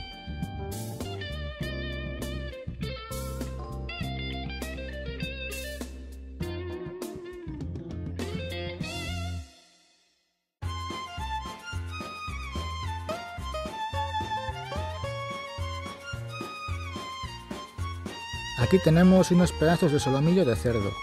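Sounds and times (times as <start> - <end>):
bass line: 0.0 - 9.4
electric guitar: 0.0 - 9.4
percussion: 0.0 - 21.0.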